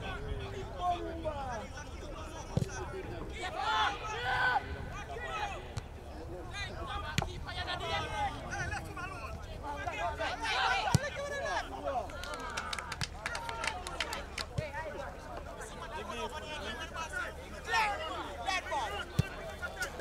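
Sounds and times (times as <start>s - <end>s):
players calling out and talking: 0.0s - 20.0s.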